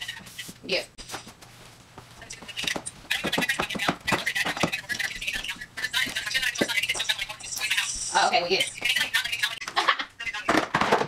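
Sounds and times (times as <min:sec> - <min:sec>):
person speaking: 0:02.2 - 0:10.7.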